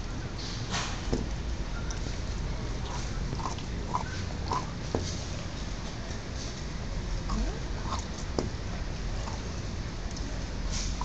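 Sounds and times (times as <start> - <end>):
dog licking and gnawing bone: 2.3 - 5.0.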